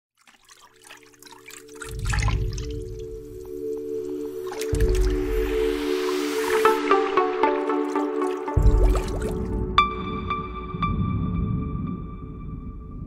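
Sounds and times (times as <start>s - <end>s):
water dripping and trickling: 0.2s - 12.8s
sustained synth chord: 2.1s - 13.0s
deep bass swells: 4.8s - 7.1s.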